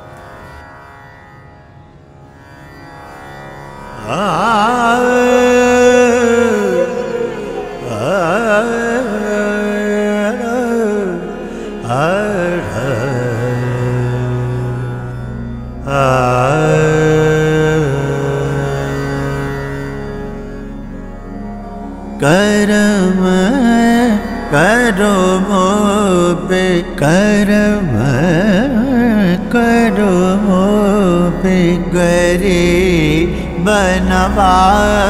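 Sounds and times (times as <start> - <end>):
steady drone: 1.3 - 35.0
man singing ornamented notes: 4.0 - 20.0, 22.2 - 35.0.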